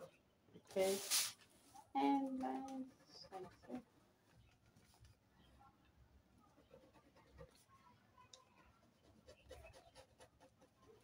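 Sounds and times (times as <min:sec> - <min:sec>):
ballpoint pen scratching on paper: 0:02.3 - 0:04.0, 0:06.4 - 0:11.0.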